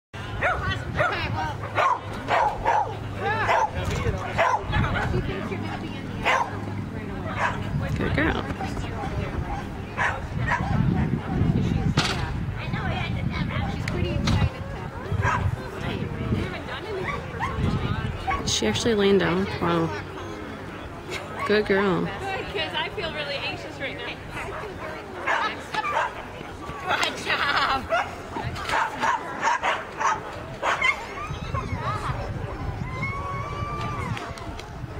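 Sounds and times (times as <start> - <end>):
dog barking: 0.4 - 3.8, 4.4 - 4.7, 6.2 - 6.6, 7.4 - 7.6, 10.0 - 10.8, 25.2 - 26.2, 28.7 - 31.0.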